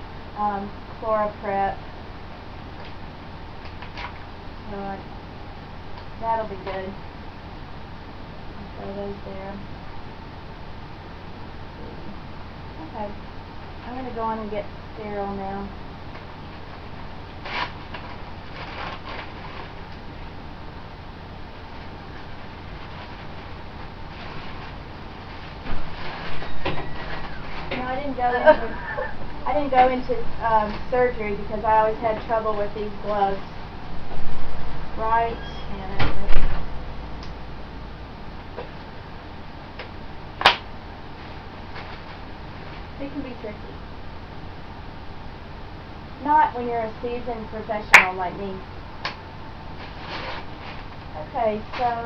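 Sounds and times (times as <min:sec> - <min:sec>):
paper wrapper crinkling: 0:17.4 - 0:20.0
sharp glove snap: 0:39.8 - 0:40.7.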